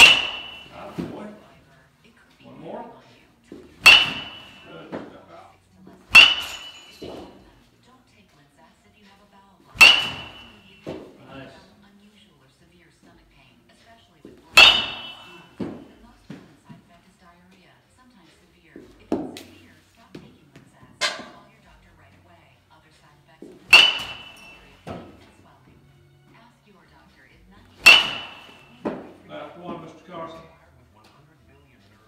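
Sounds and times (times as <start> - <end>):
bat cracking ball: 0.0 - 1.1, 3.7 - 5.1, 6.1 - 7.4, 9.8 - 11.2, 14.5 - 16.4, 23.6 - 25.4, 27.8 - 29.2.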